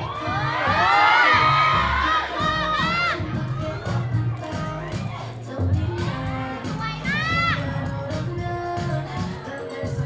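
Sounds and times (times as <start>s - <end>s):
audience cheering and screaming: 0.0s - 4.0s
dance music beat: 0.0s - 10.0s.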